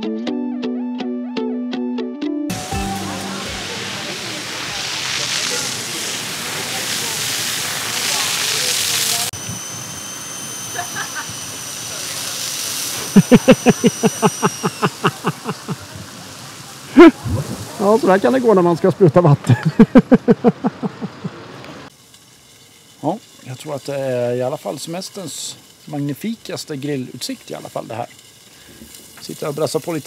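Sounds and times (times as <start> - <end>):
plucked-string music: 0.0 - 3.9
fire hose spraying onto paving: 2.5 - 9.5, 10.1 - 20.4, 21.9 - 30.0
quick laughs: 13.1 - 15.9, 16.9 - 17.3, 19.4 - 21.4.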